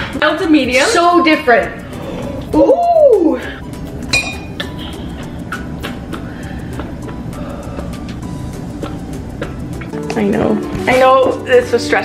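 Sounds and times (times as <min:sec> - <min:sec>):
background music with steady beat: 0:00.0 - 0:12.0
clink: 0:04.1 - 0:04.5.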